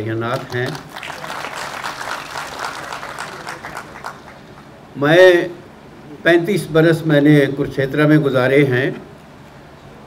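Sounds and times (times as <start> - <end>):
audience applauding: 0.3 - 4.7.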